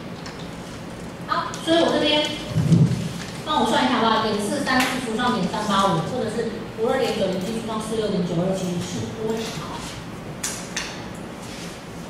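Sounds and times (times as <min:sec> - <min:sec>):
woman speaking into microphone: 0:01.3 - 0:10.0.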